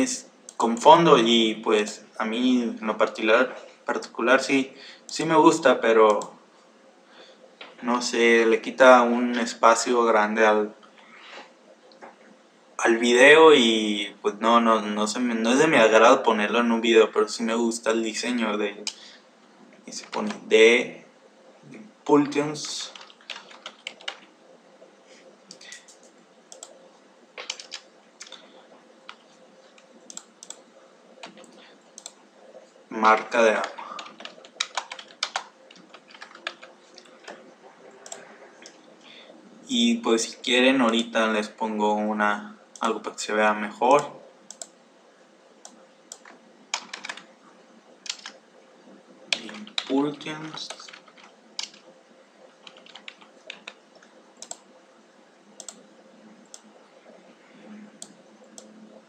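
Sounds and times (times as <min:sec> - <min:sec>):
keyboard and mouse clicks: 0:22.2 - 0:24.3, 0:25.4 - 0:26.8, 0:27.4 - 0:30.6, 0:31.2 - 0:32.6, 0:33.2 - 0:37.4, 0:38.0 - 0:38.9, 0:45.6 - 0:47.3, 0:48.0 - 0:48.4, 0:49.3 - 0:51.9, 0:52.5 - 0:54.7, 0:55.6 - 0:55.8
computer keyboard key clicks: 0:27.4 - 0:28.4.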